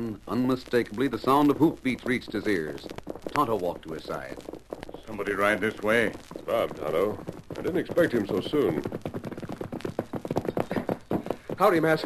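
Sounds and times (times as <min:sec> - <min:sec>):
horse hoofbeats at fast gait: 0:00.0 - 0:12.0.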